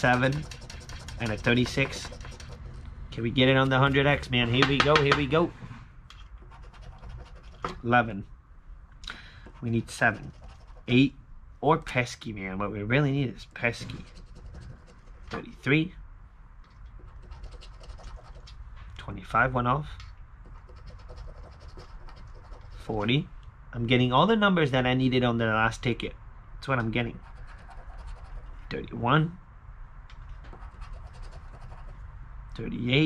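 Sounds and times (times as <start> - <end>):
coin scraping lottery ticket: 0.0 - 2.8
person speaking: 0.0 - 5.6, 9.5 - 16.0.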